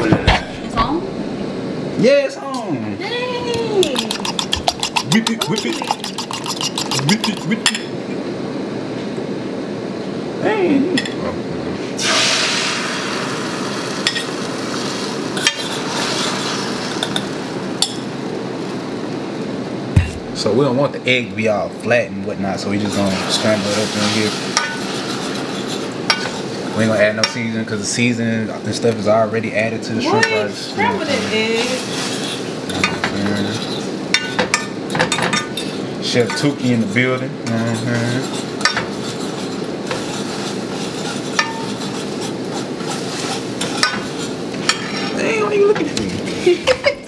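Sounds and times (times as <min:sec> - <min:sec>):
egg sizzling in frying pan: 0:03.9 - 0:07.6, 0:12.0 - 0:19.6, 0:22.8 - 0:28.0, 0:30.1 - 0:35.8, 0:37.9 - 0:45.0
utensil scraping ceramic bowl: 0:03.9 - 0:07.8, 0:22.8 - 0:27.4, 0:31.1 - 0:34.3, 0:35.3 - 0:45.2.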